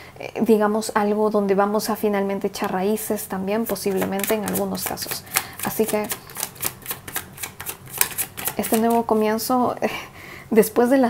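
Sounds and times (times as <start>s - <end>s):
cards being shuffled: 3.6s - 9.3s.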